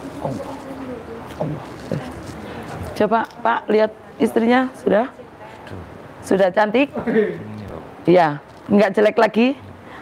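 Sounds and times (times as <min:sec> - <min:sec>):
low background murmur: 0:00.0 - 0:10.0.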